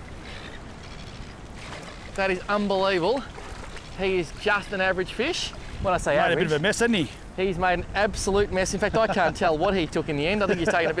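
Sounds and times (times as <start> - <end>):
water lapping at the shore: 0.0 - 11.0
fish splashing at the surface: 0.7 - 2.5
wind noise: 3.3 - 11.0.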